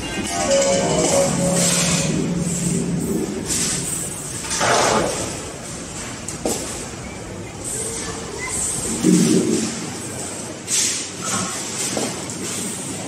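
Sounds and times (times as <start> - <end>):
balls rolling along metal tracks: 0.0 - 7.0.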